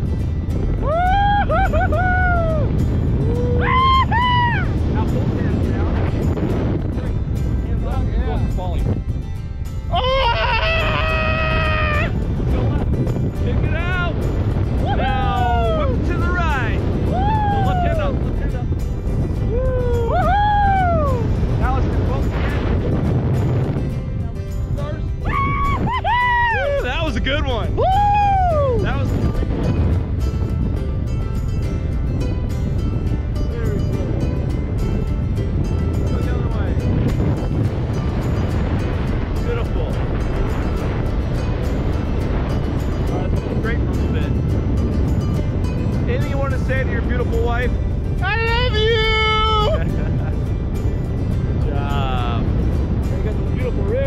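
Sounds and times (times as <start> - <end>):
background music: 0.0 - 54.0
wind rushing over microphone: 0.0 - 54.0
person whooping: 0.8 - 4.7, 9.9 - 12.1, 17.1 - 18.0, 19.5 - 21.2, 25.2 - 26.8, 27.8 - 28.8.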